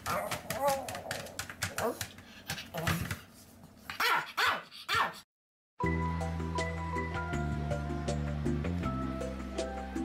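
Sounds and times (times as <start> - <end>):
small dog barking: 4.0 - 5.2
music: 5.8 - 10.0.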